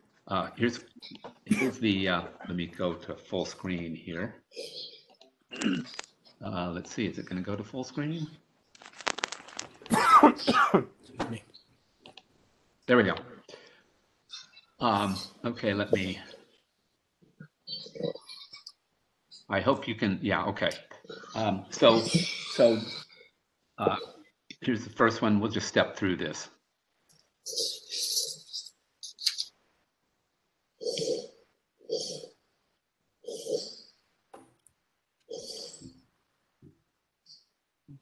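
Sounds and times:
person clearing throat: 0:01.5 - 0:02.0, 0:05.5 - 0:06.0, 0:09.9 - 0:11.3, 0:23.9 - 0:24.2.

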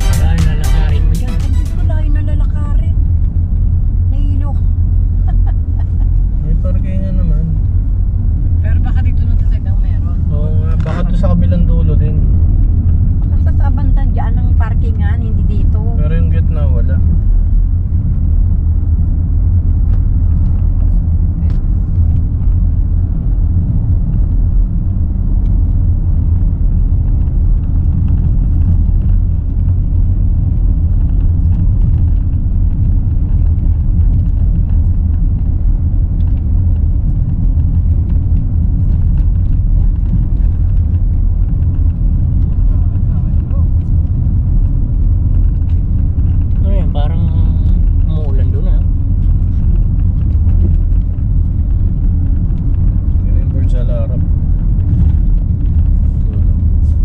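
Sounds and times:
car engine rumble: 0:00.0 - 0:57.0.

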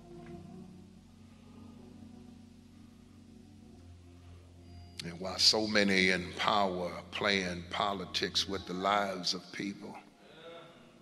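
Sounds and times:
soft sustained low chords: 0:00.0 - 0:10.2.

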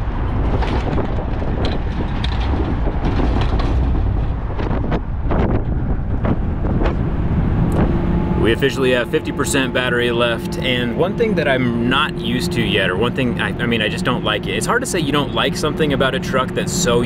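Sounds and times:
road and tyre rumble: 0:00.0 - 0:17.0
wind buffeting microphone: 0:00.0 - 0:17.0.

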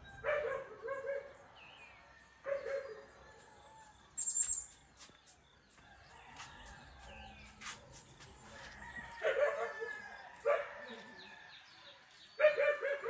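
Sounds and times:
dog barking: 0:00.2 - 0:01.4, 0:02.4 - 0:03.2, 0:09.2 - 0:11.1, 0:12.4 - 0:13.0.

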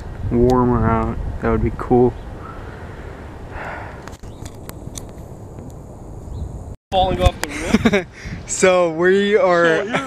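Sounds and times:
wind rumble on microphone: 0:00.0 - 0:02.6, 0:03.2 - 0:08.8.

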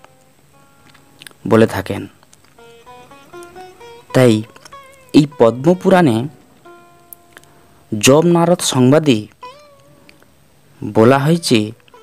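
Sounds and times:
person speaking: 0:01.2 - 0:12.0.

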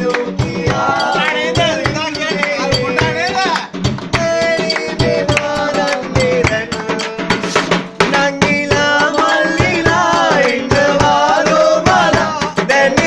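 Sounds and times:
people singing along: 0:00.0 - 0:03.4, 0:04.0 - 0:13.0
hand drum beating fast: 0:00.0 - 0:13.0.

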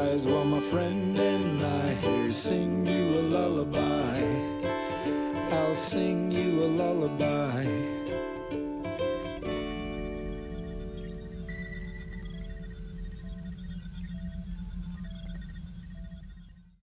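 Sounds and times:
acoustic guitar and ukulele chord: 0:00.0 - 0:11.7
steady low hum: 0:00.0 - 0:16.8.

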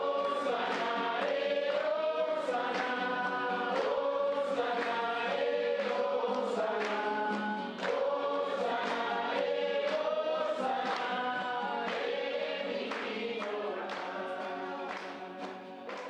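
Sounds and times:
choir singing long notes: 0:00.0 - 0:16.0.

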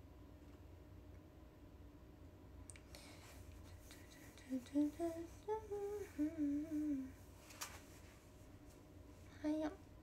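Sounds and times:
woman humming a tune: 0:04.4 - 0:07.2.

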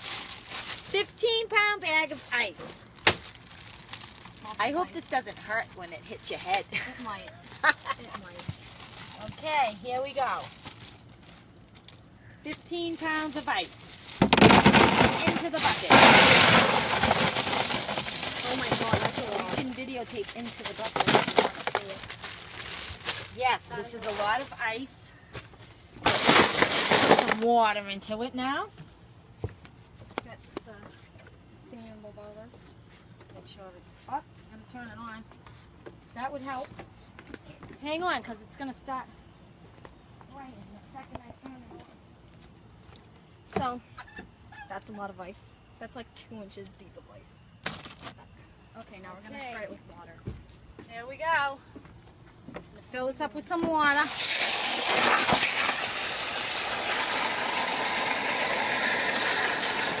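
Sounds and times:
flip-flop footsteps on wooden deck: 0:50.2 - 0:51.0, 0:51.6 - 0:52.8
hose nozzle spraying on ice: 0:53.8 - 1:00.0.

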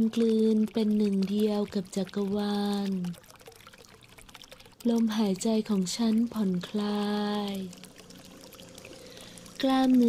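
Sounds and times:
faint trickling water: 0:00.0 - 0:10.0
woman speaking calmly: 0:04.8 - 0:07.8, 0:09.6 - 0:10.0.

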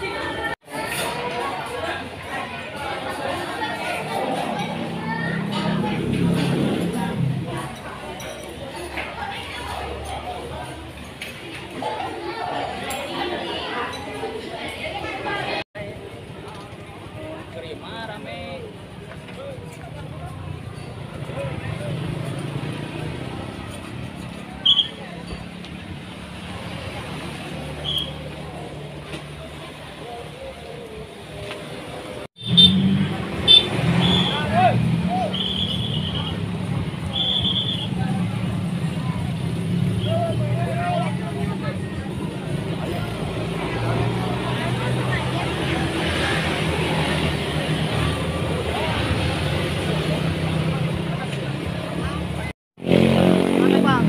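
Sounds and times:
motorcycles and cars passing: 0:00.0 - 0:54.0.

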